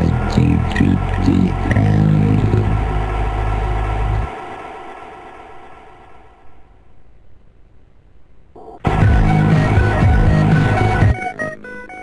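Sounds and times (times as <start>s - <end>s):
distorted bass synth: 0.0s - 4.3s, 8.8s - 11.2s
electro house music: 0.0s - 4.4s, 8.8s - 11.6s.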